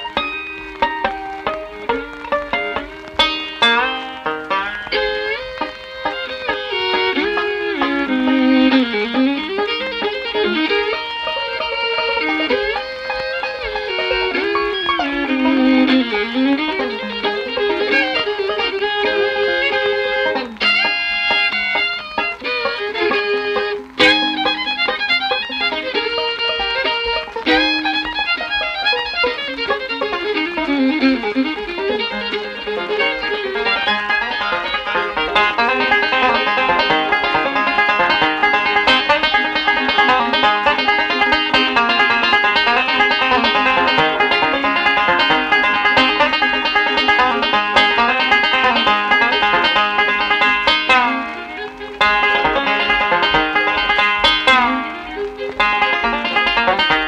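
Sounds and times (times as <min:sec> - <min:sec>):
bowed fiddle: 0:00.0 - 0:57.0
plucked banjo notes: 0:00.0 - 0:57.0.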